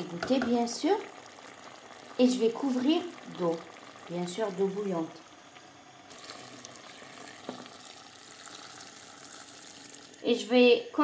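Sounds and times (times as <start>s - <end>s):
water pouring and sizzling: 0.0s - 10.5s.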